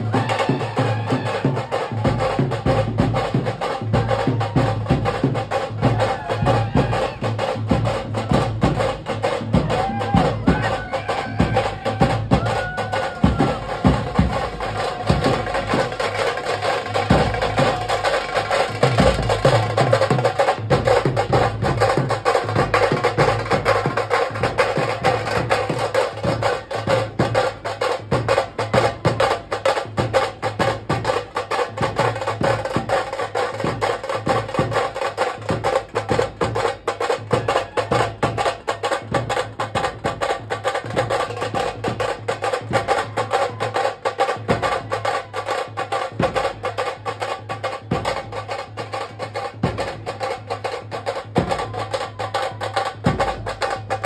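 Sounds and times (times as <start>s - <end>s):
fast stick-beaten drumming: 0.0s - 54.0s.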